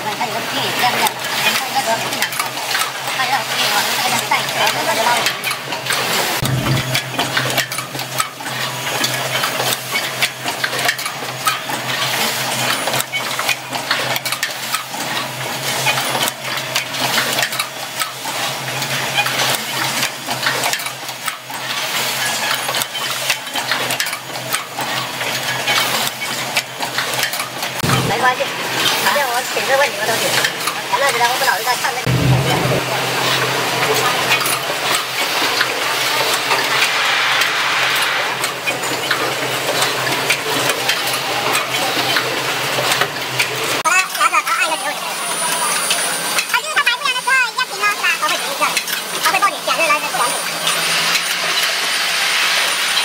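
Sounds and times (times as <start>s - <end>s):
steady low machine hum: 4.2s - 8.4s, 32.0s - 40.6s.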